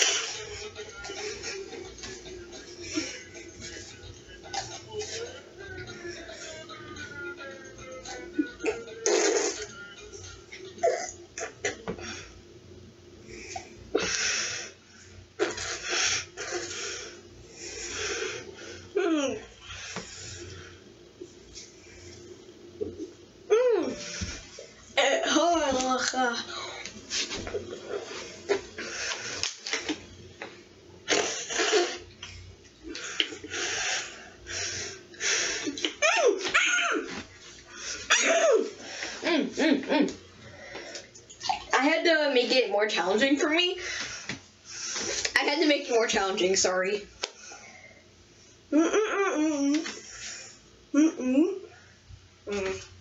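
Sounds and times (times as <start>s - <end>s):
muffled hum: 0.0s - 53.0s.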